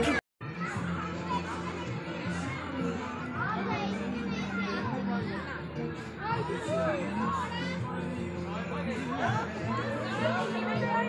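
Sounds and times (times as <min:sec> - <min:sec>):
background music: 0:00.0 - 0:11.0
children's voices chattering: 0:00.0 - 0:11.0.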